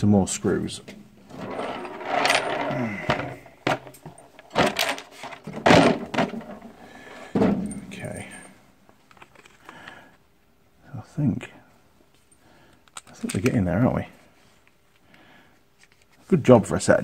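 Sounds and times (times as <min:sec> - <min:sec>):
steel screws clinking: 0:01.3 - 0:05.4.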